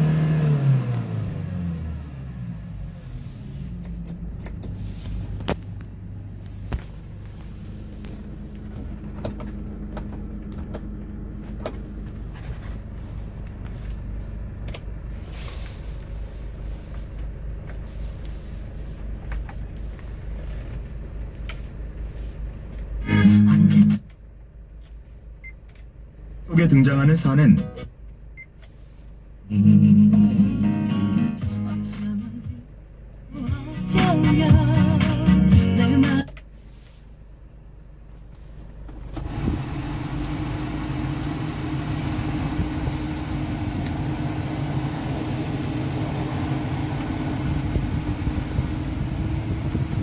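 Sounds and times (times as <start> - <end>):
diesel engine idling: 0.0 - 23.6, 28.0 - 50.0.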